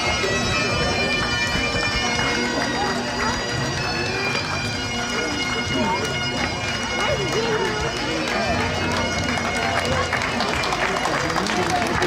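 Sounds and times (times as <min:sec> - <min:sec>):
bagpipes playing: 0:00.0 - 0:12.0
people talking: 0:00.0 - 0:12.0.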